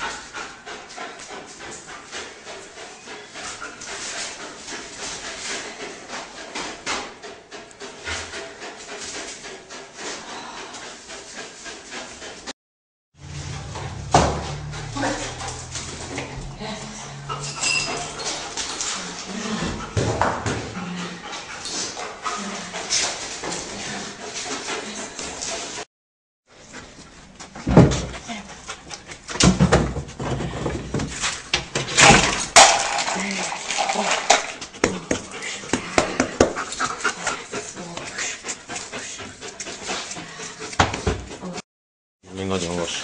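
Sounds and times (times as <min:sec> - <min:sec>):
knocks and scuffing thuds: 0:27.4 - 0:28.2.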